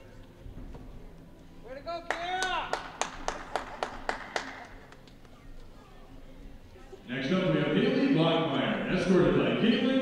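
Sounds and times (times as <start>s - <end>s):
audience clapping: 2.0s - 5.3s.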